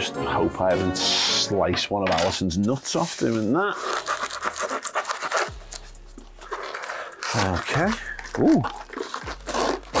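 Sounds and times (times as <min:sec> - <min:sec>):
knife scraping through tape: 0:03.0 - 0:10.0.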